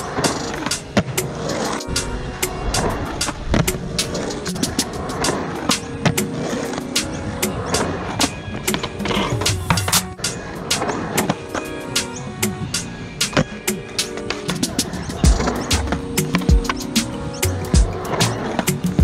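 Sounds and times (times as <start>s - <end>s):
music with steady beat: 0.0s - 19.0s
skateboard wheels rolling on concrete: 0.0s - 19.0s.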